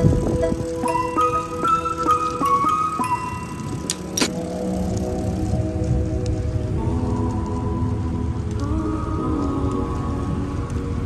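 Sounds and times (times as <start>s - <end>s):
background music: 0.0s - 11.0s
road and wind rumble: 0.0s - 11.0s.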